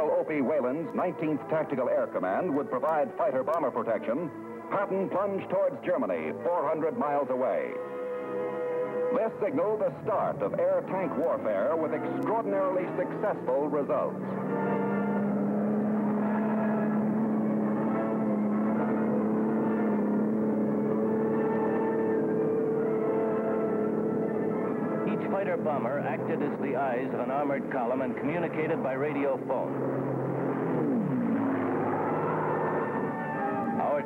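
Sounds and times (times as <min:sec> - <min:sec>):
tank engines droning: 0:00.0 - 0:34.0.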